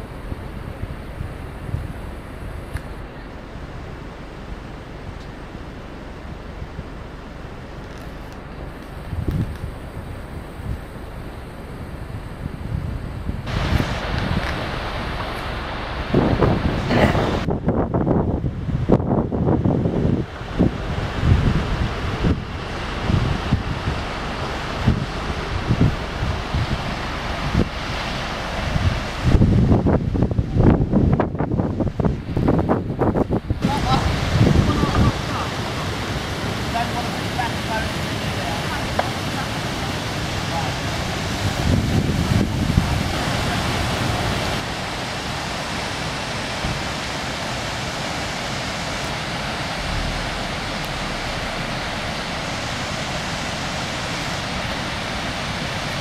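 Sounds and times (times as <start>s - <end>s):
wind buffeting microphone: 0.0s - 44.8s, 48.6s - 56.0s
river rushing over rocks: 13.4s - 17.8s, 19.8s - 30.9s, 33.1s - 56.0s.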